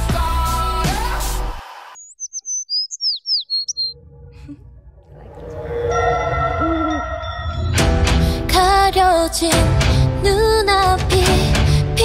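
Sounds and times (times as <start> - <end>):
bird chirps: 2.0 - 4.6.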